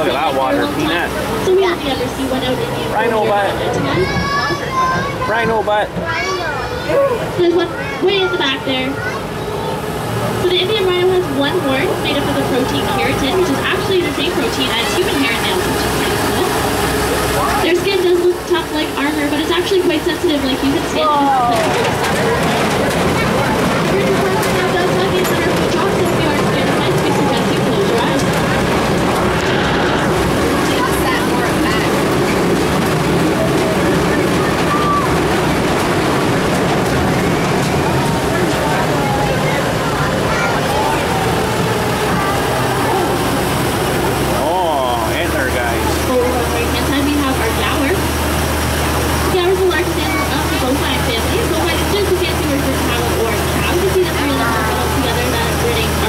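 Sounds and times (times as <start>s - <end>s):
indistinct voices: 0.0s - 56.0s
road noise: 0.0s - 56.0s
truck engine running: 0.0s - 56.0s.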